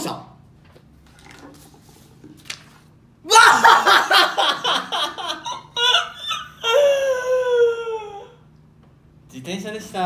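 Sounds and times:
man laughing hard: 3.3 - 7.5.

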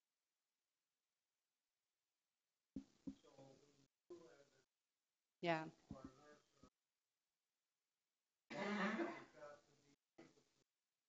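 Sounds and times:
person clearing throat: 8.5 - 9.3.

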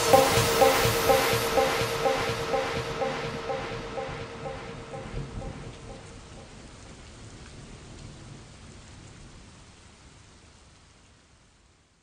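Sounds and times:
rain falling: 4.5 - 12.0.

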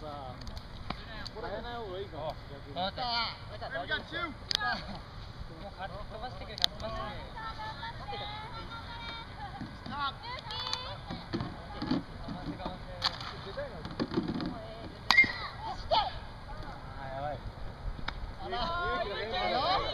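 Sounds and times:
bat striking ball: 15.1 - 15.5
players talking: 18.3 - 19.9.

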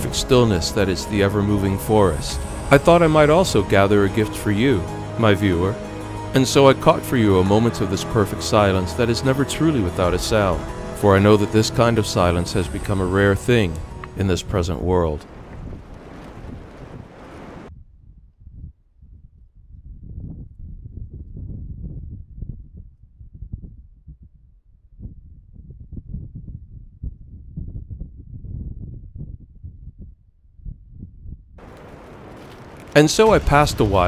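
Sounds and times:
wind gusting against microphone: 0.0 - 6.2, 10.1 - 23.8, 31.6 - 34.0.

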